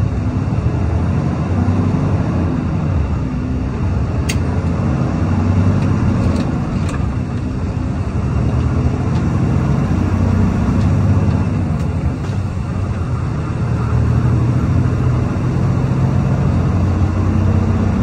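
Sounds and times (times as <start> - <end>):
road noise: 0.0 - 18.0
truck diesel engine drone: 0.0 - 18.0.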